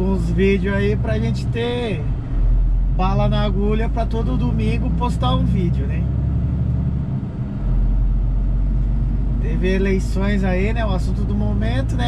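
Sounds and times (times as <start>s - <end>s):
truck engine and road drone: 0.0s - 12.0s.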